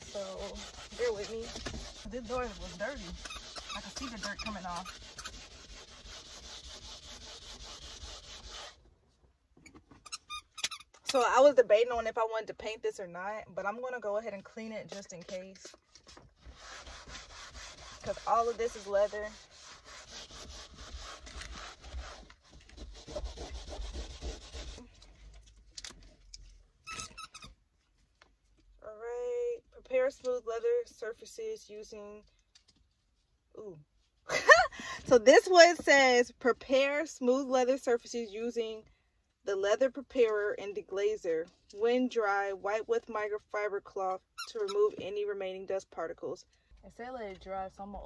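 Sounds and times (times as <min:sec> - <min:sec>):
scrub pad squeaking on leather: 0:00.0 - 0:08.8, 0:09.9 - 0:11.2, 0:14.9 - 0:24.9, 0:44.4 - 0:45.0.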